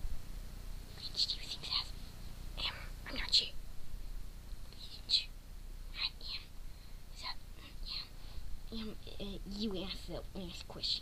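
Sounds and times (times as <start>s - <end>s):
person whispering: 0.9s - 2.0s, 2.6s - 3.6s, 4.7s - 5.3s, 5.9s - 6.5s, 7.1s - 9.4s.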